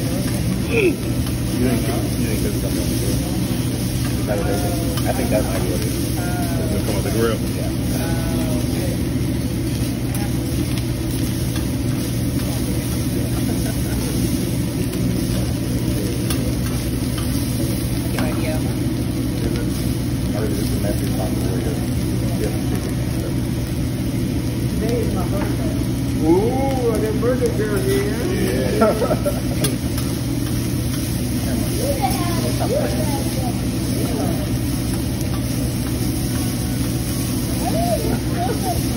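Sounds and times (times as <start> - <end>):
background chatter: 0.0 - 38.9
rice sizzling on a griddle: 0.0 - 38.9
steady low hum: 0.0 - 38.9.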